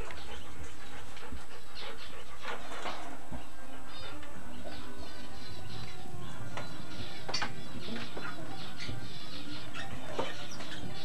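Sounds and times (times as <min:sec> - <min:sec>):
dog panting: 0:00.0 - 0:05.2.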